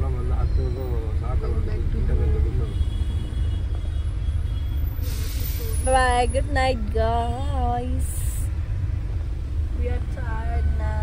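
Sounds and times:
short hiss: 0:05.0 - 0:05.8.

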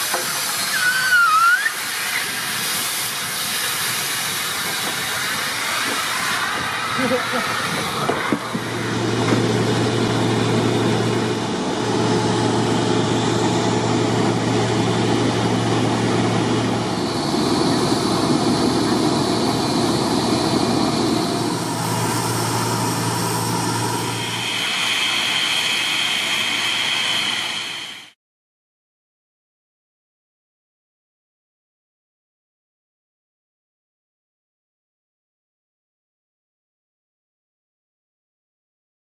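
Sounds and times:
steam hissing: 0:00.0 - 0:09.9, 0:14.0 - 0:28.2
machinery humming: 0:05.5 - 0:28.1.

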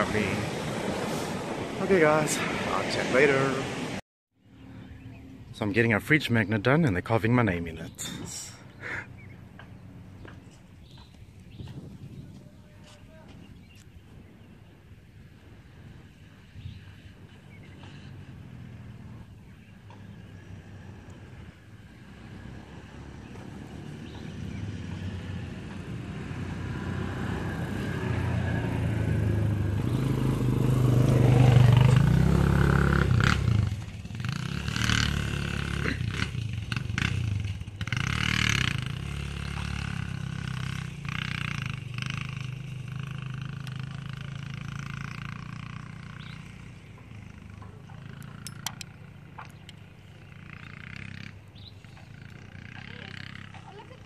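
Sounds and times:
engine running: 0:17.6 - 0:54.0.

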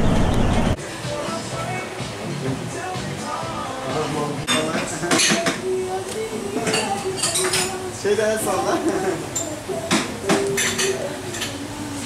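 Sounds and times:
dishes and cutlery clinking: 0:04.4 - 0:05.8, 0:06.5 - 0:07.9, 0:08.9 - 0:11.7.

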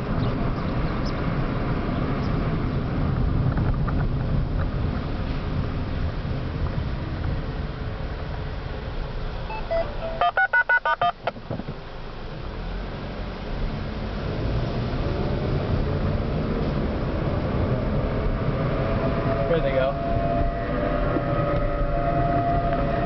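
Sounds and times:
car road noise: 0:00.0 - 0:23.0
touch-tone beeps: 0:09.5 - 0:11.3.

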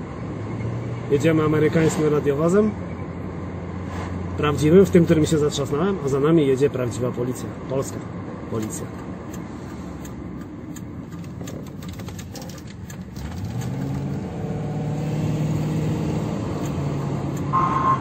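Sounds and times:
tyre and road noise: 0:00.0 - 0:18.0
car engine accelerating: 0:11.2 - 0:18.0.

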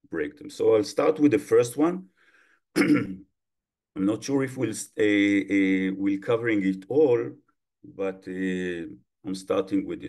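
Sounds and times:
man clearing his throat: 0:02.8 - 0:03.3.

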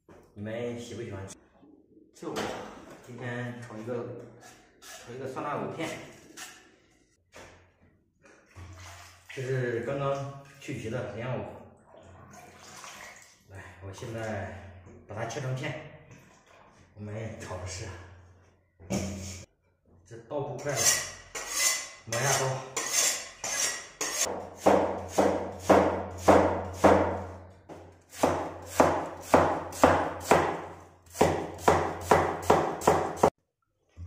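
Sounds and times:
water sloshing in a metal basin: 0:08.2 - 0:17.9
knife chopping on wooden board: 0:24.2 - 0:33.4.

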